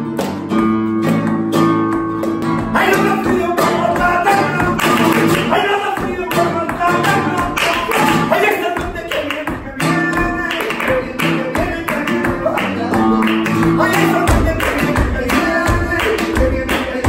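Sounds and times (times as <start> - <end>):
acoustic flamenco guitar: 0.0 - 17.0
rhythmic hand-clapping: 0.0 - 17.0.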